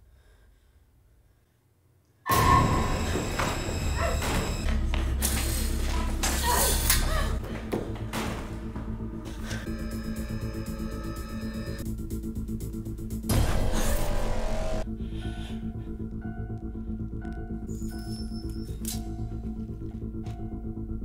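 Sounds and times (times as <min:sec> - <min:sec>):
horror film music: 0:02.3 - 0:21.0
heavy breathing: 0:14.9 - 0:17.2.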